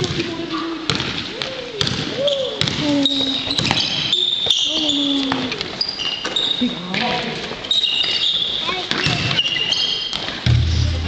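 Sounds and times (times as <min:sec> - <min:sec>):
basketball bouncing on floor: 0:00.0 - 0:04.6
shoes squeaking: 0:00.0 - 0:10.5
players' voices: 0:00.0 - 0:11.0.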